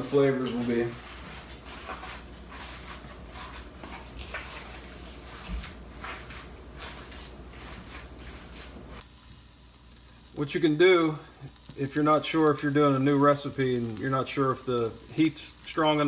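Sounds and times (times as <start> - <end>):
even hiss: 7.8 - 16.0.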